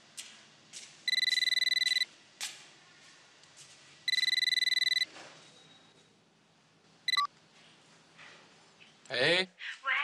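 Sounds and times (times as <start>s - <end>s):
phone key beep: 1.1s - 2.1s, 4.1s - 5.1s, 7.1s - 7.3s.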